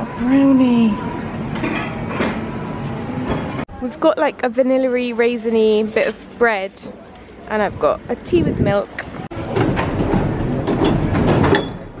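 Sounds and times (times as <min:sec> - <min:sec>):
train and platform din: 0:00.0 - 0:12.0
clunks: 0:09.4 - 0:12.0.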